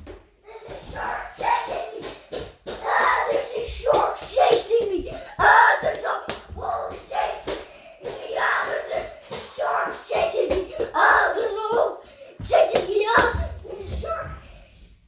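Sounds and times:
footsteps on laminate floor: 0:00.0 - 0:15.0.

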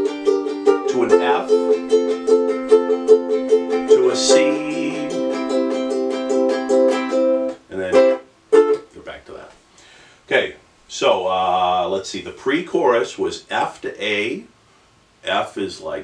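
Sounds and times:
ukulele strumming: 0:00.0 - 0:08.9.

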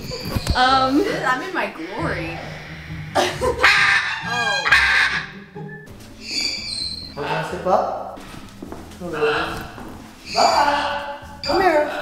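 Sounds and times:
macaws squawking: 0:00.0 - 0:05.5, 0:06.2 - 0:08.1, 0:09.0 - 0:12.0.

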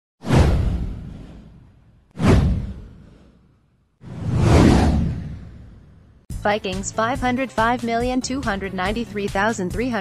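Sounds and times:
whoosh with deep rumble: 0:00.2 - 0:06.3.

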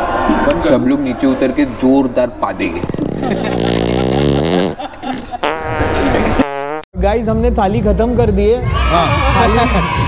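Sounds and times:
comic fart sound effect: 0:02.8 - 0:04.8, 0:05.4 - 0:06.9.

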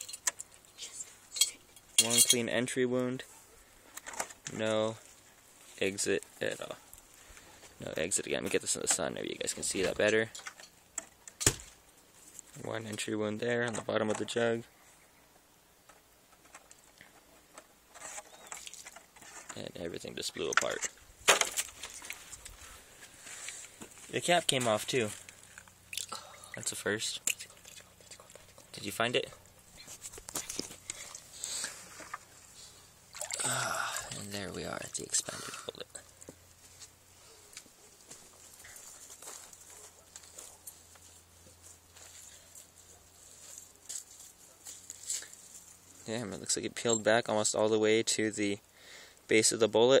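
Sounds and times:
camera handling rustle: 0:29.8 - 0:32.3.

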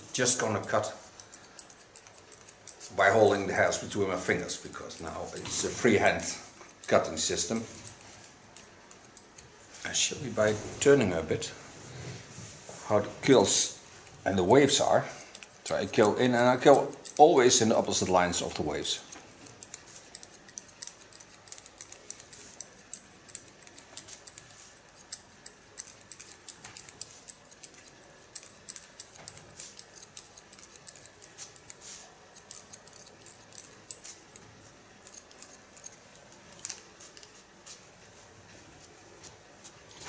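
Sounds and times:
comb strokes: 0:00.0 - 0:40.0
scissors snipping wet hair: 0:00.1 - 0:09.6, 0:13.6 - 0:37.8.

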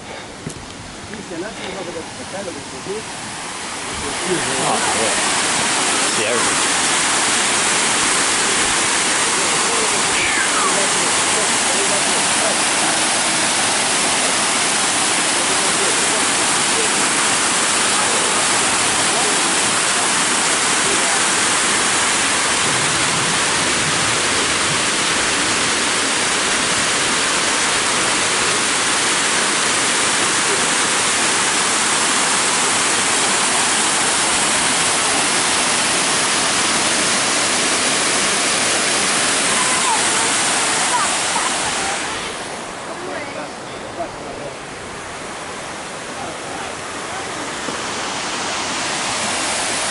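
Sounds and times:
waterfall rushing over rocks: 0:00.0 - 0:49.9.

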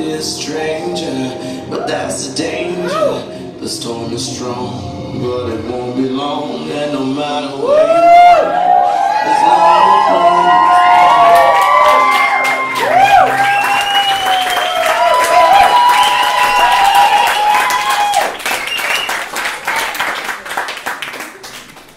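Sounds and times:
audience cheering and whooping: 0:07.6 - 0:20.1
dense clapping: 0:11.2 - 0:21.9.

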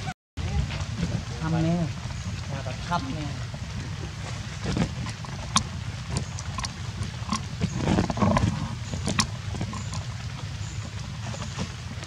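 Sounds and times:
sharp ticks: 0:05.1 - 0:10.2
monkey grunting call: 0:06.3 - 0:10.1.

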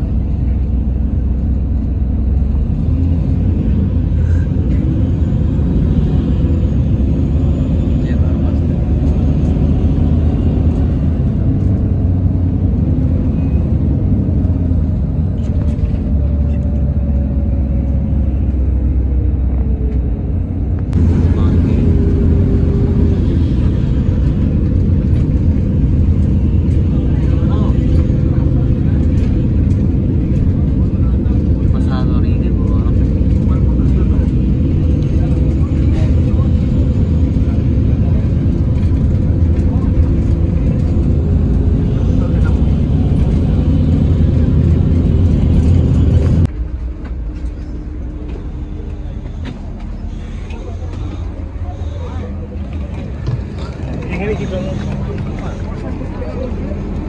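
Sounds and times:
vehicle engine and road noise: 0:00.0 - 0:57.0.

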